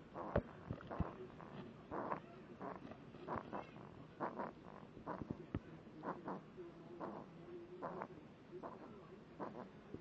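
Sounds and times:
infant grunting and squeaking: 0:00.1 - 0:05.4, 0:07.0 - 0:09.7.

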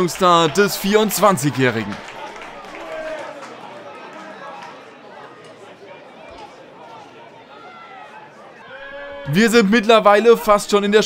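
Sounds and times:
crowd chatter: 0:00.0 - 0:11.0
players shouting: 0:00.0 - 0:11.0.

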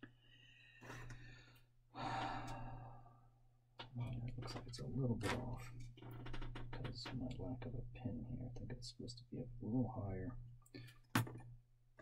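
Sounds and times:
man sighing: 0:02.0 - 0:03.0.

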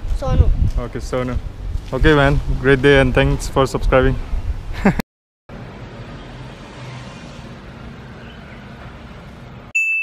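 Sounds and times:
chime ding: 0:09.7 - 0:10.0.

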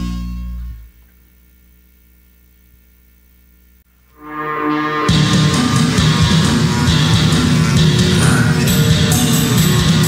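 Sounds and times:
low electrical hum: 0:00.0 - 0:05.1
rock guitar chord: 0:04.0 - 0:10.0.

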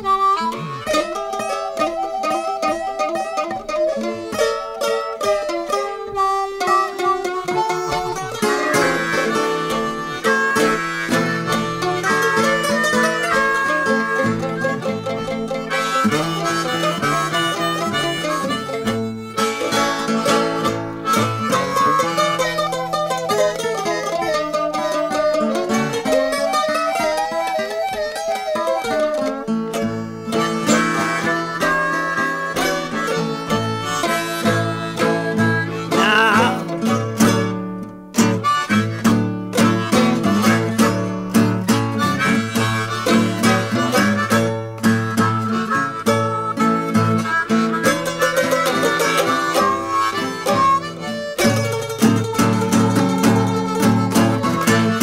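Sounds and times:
harmonica bending notes: 0:00.0 - 0:55.0
mandolin: 0:00.0 - 0:55.0
plucked acoustic guitar: 0:00.0 - 0:55.0.

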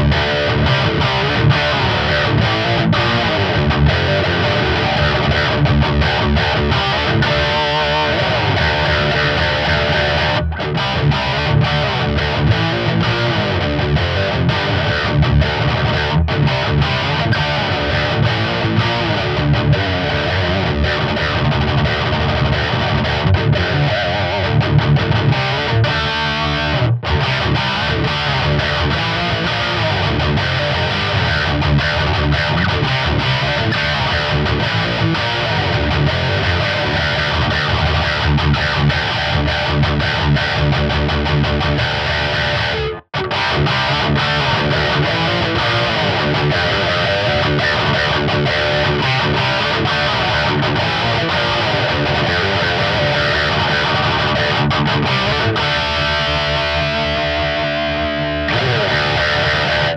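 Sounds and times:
distorted electric guitar riffing: 0:00.0 - 0:59.9.

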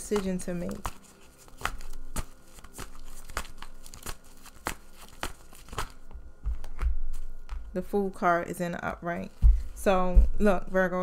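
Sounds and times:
cards being shuffled: 0:00.0 - 0:07.7.

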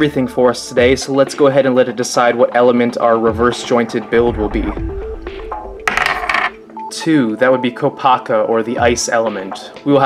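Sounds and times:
background music with held notes: 0:00.0 - 0:10.0
die clattering on a desk: 0:05.9 - 0:06.6.

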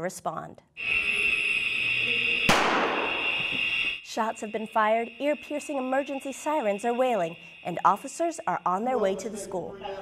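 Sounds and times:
high-pitched alarm tone: 0:00.8 - 0:10.0
gunshot echoing: 0:02.5 - 0:03.4.

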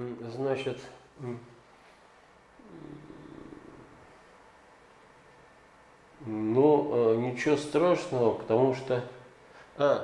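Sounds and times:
man humming in hesitation: 0:02.6 - 0:04.0.

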